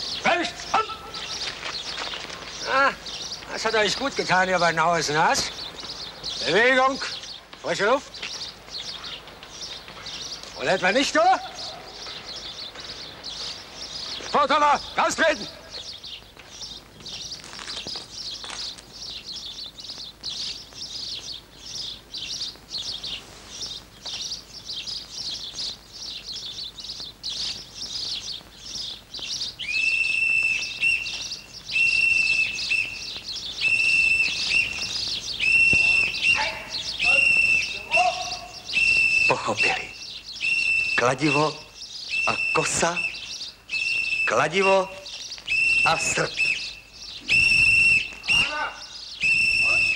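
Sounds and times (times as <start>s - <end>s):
birds chirping: 0.0s - 49.9s
whistled note: 49.2s - 49.9s.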